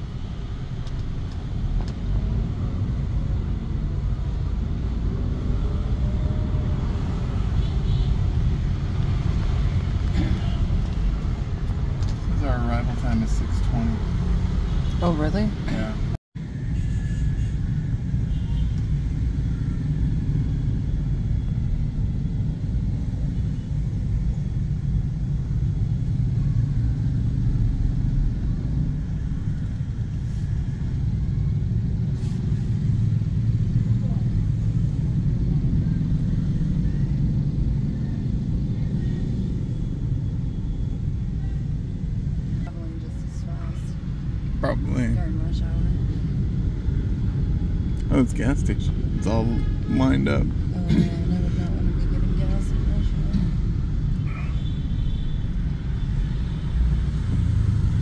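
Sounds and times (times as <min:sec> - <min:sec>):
road traffic: 0:00.0 - 0:58.0
car engine rumble: 0:17.4 - 0:49.4.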